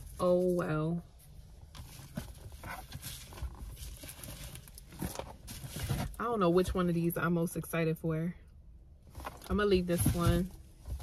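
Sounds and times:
objects being handled: 0:01.6 - 0:06.2, 0:09.1 - 0:11.0.

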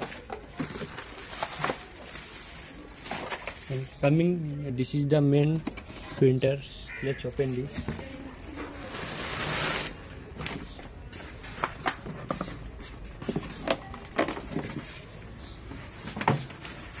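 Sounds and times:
cardboard and foam rustling scrape: 0:07.8 - 0:10.1.

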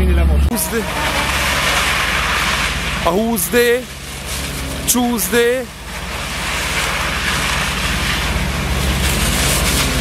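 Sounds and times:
car engine running: 0:00.0 - 0:10.0
tyres hissing through water: 0:00.6 - 0:10.0.

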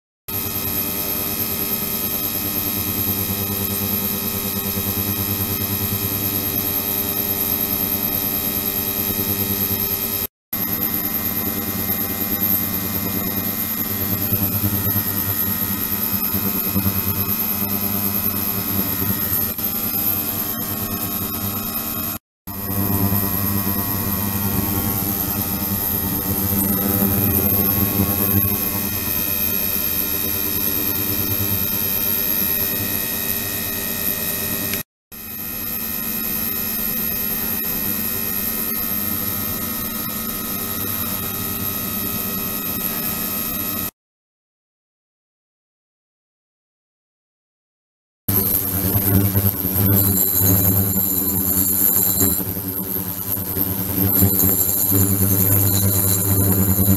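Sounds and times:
ultrasonic transducer hum and whine: 0:00.3 - 0:43.7, 0:48.3 - 0:56.9.

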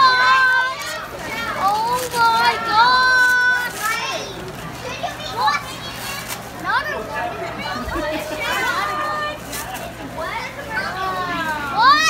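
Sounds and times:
background chatter: 0:00.0 - 0:12.0
children's excited calls: 0:00.0 - 0:12.0.

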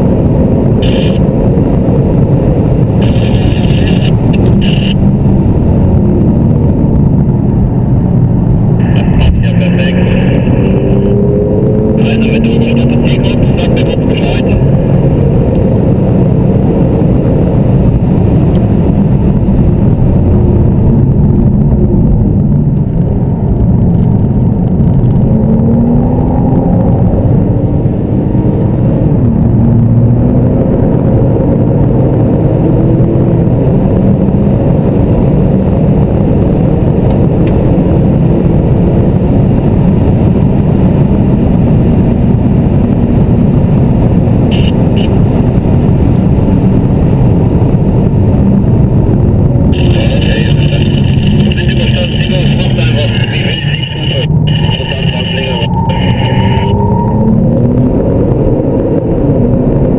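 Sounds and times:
car engine accelerating: 0:00.0 - 0:59.9
road and tyre noise: 0:00.0 - 0:59.9.

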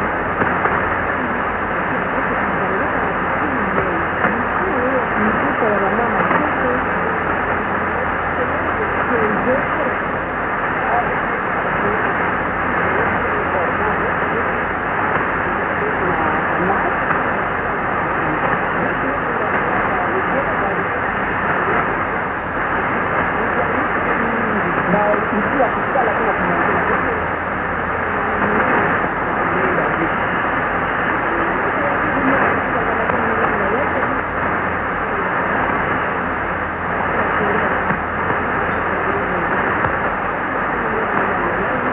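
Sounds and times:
radio static: 0:00.0 - 0:41.9.

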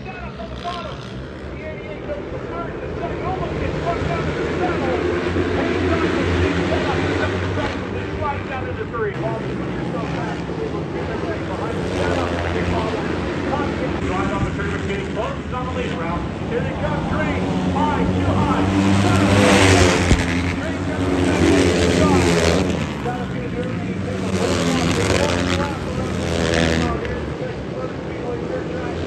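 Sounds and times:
motorcycles revving past: 0:09.2 - 0:15.2, 0:16.6 - 0:27.3.

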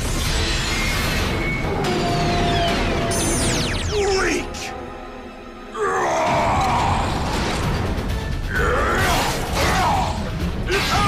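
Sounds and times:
dramatic background music: 0:00.0 - 0:11.0.

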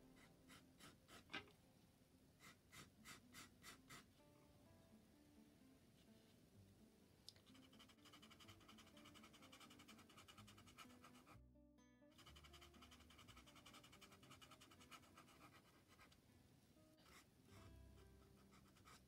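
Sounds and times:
faint background music: 0:00.0 - 0:19.0
pencil scratching on paper: 0:00.2 - 0:01.5, 0:02.4 - 0:04.1, 0:07.5 - 0:11.4, 0:12.2 - 0:16.2, 0:17.0 - 0:19.0.

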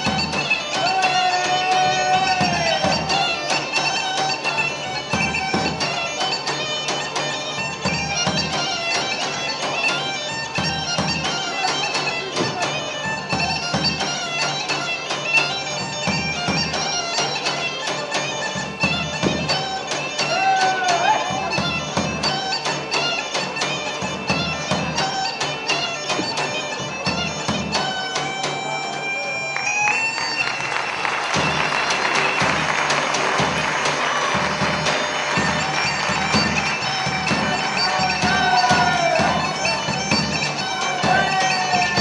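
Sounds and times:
reed wind instrument melody: 0:00.0 - 0:42.0.

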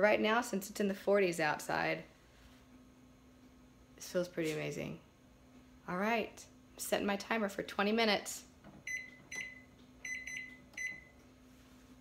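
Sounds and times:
short high keypad beeps: 0:08.9 - 0:11.1.

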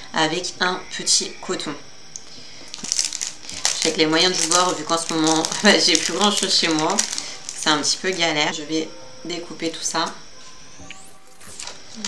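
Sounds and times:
crinkling and rustling: 0:02.2 - 0:08.4.

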